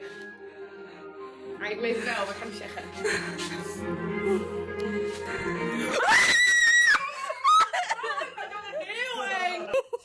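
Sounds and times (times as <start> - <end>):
woman screaming: 5.9 - 7.8.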